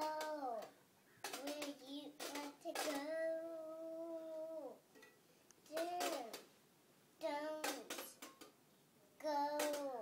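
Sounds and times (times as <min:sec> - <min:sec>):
young girl singing: 0:00.0 - 0:04.8, 0:05.6 - 0:06.5, 0:07.2 - 0:08.3, 0:09.2 - 0:10.0.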